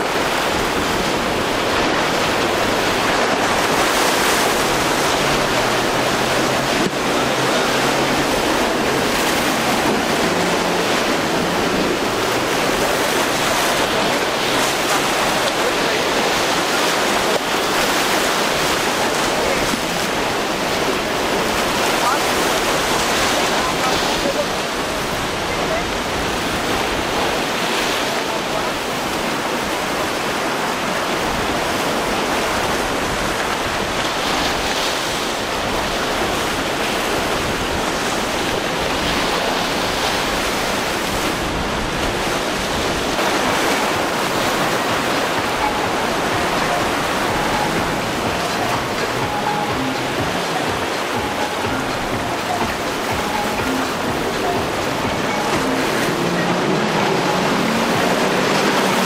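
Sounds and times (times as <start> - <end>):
ocean surf breaking: 0.0 - 59.0.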